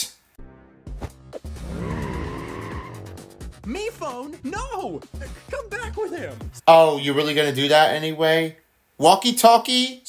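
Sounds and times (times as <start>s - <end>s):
background music: 0.4s - 6.7s.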